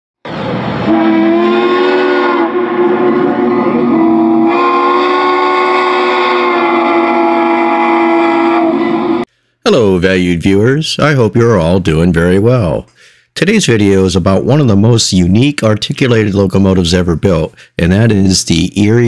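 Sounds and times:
train whistle blast: 0.8 - 9.3.

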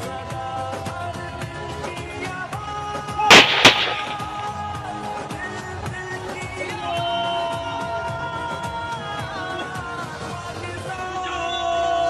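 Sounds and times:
rifle shots: 3.3 - 4.5.

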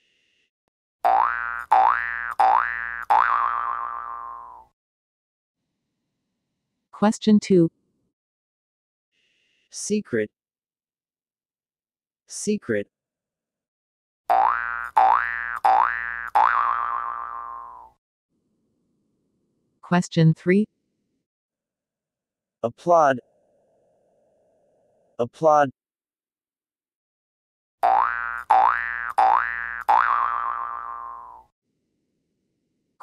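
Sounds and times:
cartoon boing sound effect: 1.1 - 4.7, 14.3 - 18.0, 27.8 - 31.5.

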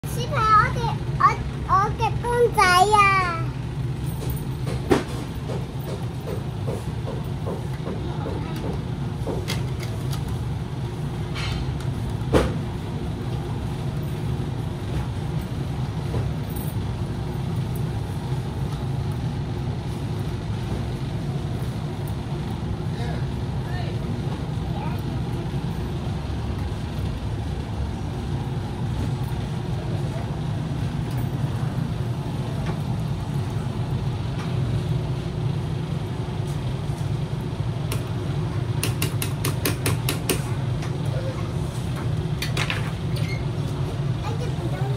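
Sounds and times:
low background hum: 0.0 - 44.9.

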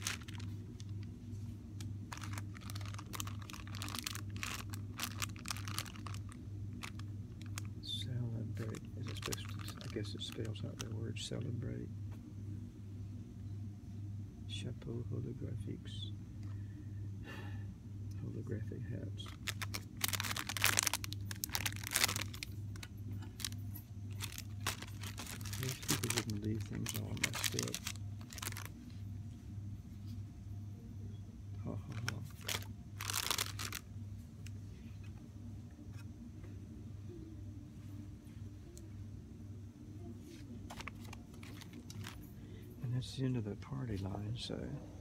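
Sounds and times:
plastic packaging crinkling: 0.0 - 1.1, 1.8 - 7.8, 8.5 - 11.0, 19.2 - 29.0, 31.7 - 34.6, 40.6 - 42.3
low hum: 0.0 - 43.7.

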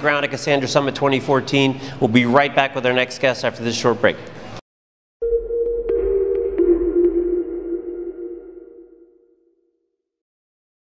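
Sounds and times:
electronic outro sting: 5.2 - 9.4.

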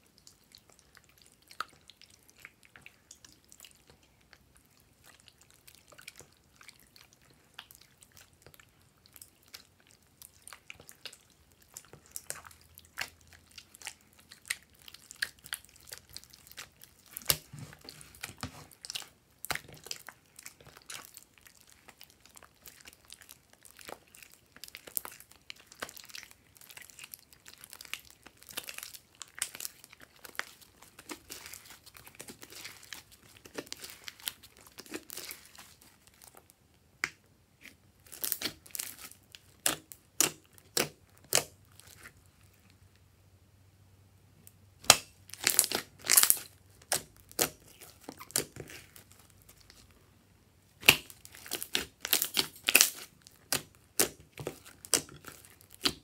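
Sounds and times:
slime crackling and popping: 0.1 - 42.2, 44.8 - 49.9, 50.8 - 56.0.

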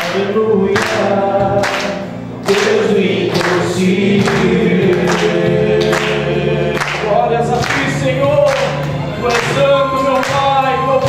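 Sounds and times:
men singing worship song: 0.0 - 11.0.

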